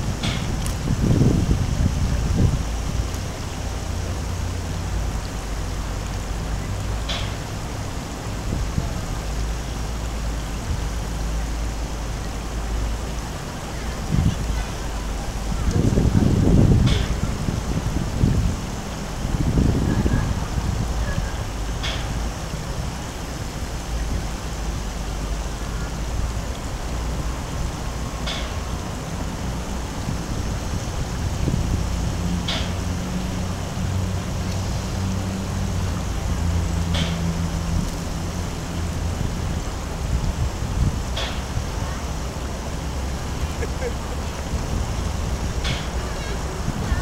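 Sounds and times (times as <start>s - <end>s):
low hum and hiss: 0.0s - 47.0s
low murmurs: 0.0s - 47.0s.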